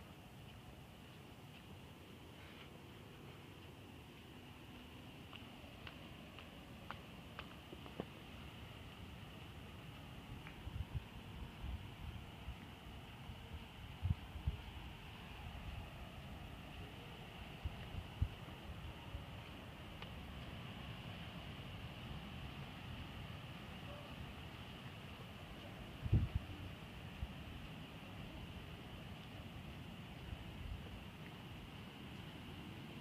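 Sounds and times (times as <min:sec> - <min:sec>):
background hiss: 0:00.0 - 0:33.0.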